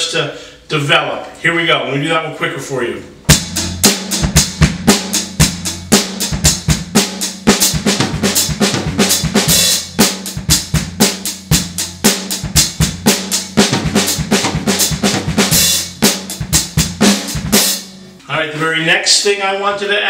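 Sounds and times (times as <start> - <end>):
drum kit played fast: 3.2 - 18.2.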